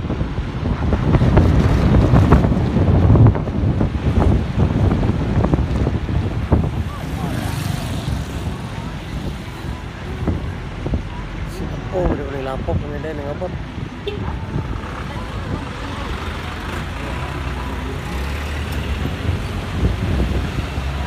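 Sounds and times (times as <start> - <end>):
moving vehicle rumble: 0.0 - 21.0
wind buffeting microphone: 0.0 - 21.0.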